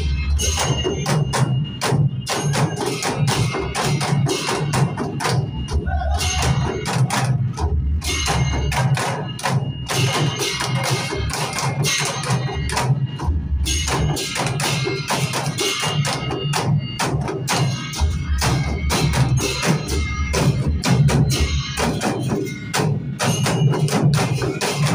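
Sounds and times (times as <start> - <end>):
barrel drums ensemble playing: 0.0 - 24.9.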